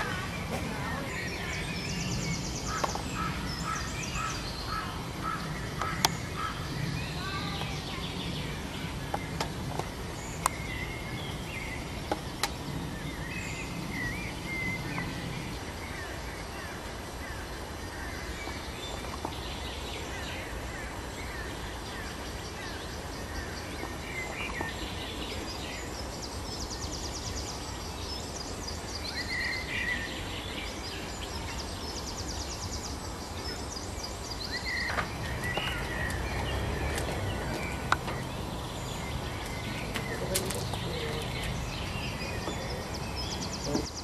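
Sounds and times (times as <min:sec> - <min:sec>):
songbirds trilling and chirping: 0:00.0 - 0:44.0
low outdoor rumble: 0:30.1 - 0:44.0.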